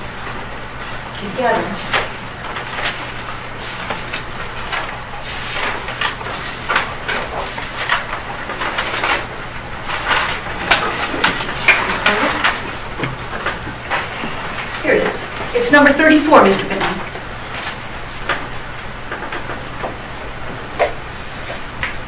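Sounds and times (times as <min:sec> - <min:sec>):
pages rustling and turning: 0:00.8 - 0:15.5
paper crackles: 0:01.5 - 0:15.6.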